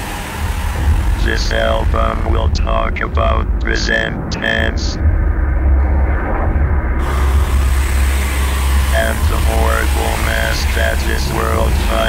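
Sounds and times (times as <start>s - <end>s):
heavy low rumble: 0.0s - 12.0s
industrial noise music: 0.0s - 12.0s
bright hiss: 7.0s - 12.0s.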